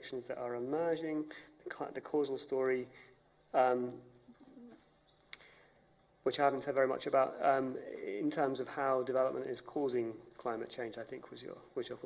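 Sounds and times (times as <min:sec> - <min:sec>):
faint low murmur: 0:00.0 - 0:12.0.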